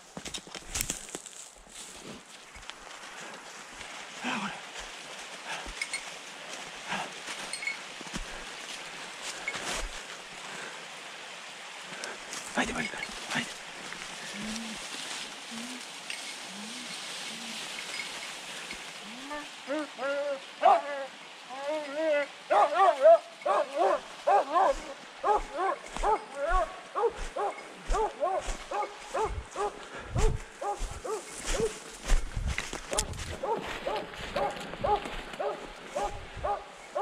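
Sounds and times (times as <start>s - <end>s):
dog barking: 20.6s - 21.0s, 22.5s - 31.8s, 32.9s - 37.0s
footsteps thudding: 27.2s - 35.3s.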